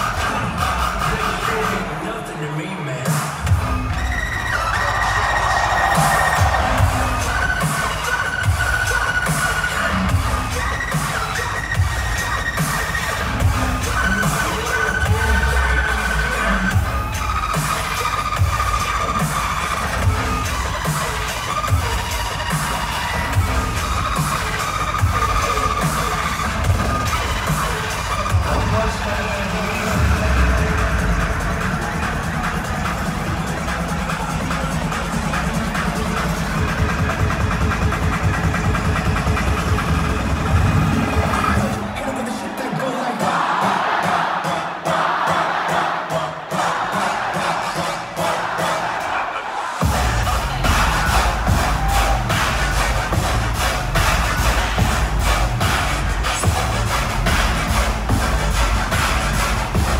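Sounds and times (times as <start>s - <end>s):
crowd cheering: 0.0s - 59.9s
loud live dubstep: 0.0s - 59.9s.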